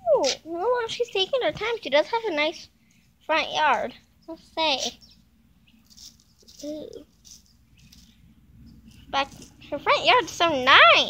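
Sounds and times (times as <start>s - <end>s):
light rustling of plant: 5.7s - 9.7s.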